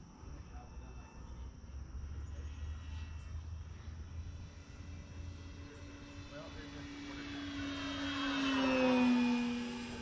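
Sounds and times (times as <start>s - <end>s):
rc plane motor whine: 0.0s - 10.0s.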